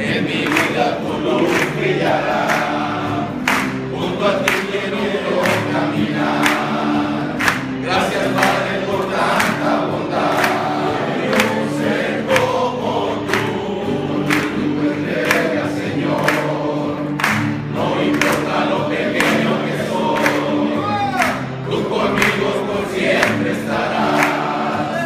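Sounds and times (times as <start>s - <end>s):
men singing together: 0.0s - 25.0s.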